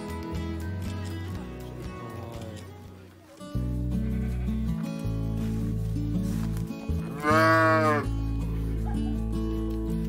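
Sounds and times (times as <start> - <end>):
background music: 0.0 - 10.0
sheep bleating: 3.9 - 4.8, 7.0 - 8.1.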